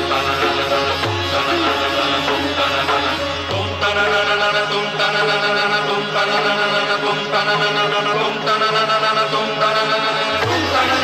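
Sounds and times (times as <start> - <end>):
instrumental music: 0.0 - 6.6, 9.3 - 11.0
devotional chant in held notes: 0.0 - 11.0.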